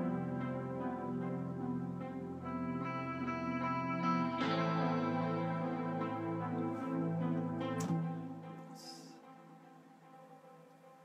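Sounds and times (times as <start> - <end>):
held synth chords: 0.0 - 11.0.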